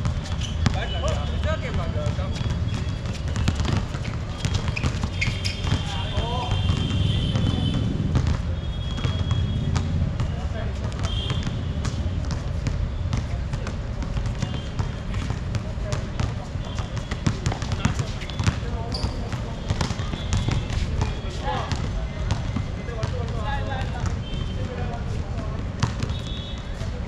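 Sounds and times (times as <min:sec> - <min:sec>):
basketball bouncing on court: 0:00.0 - 0:27.0.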